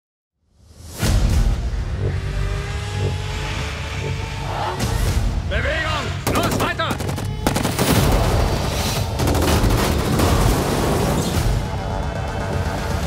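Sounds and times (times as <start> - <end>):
trailer music: 0.4 - 13.0
deep rumbling drone: 1.0 - 5.5.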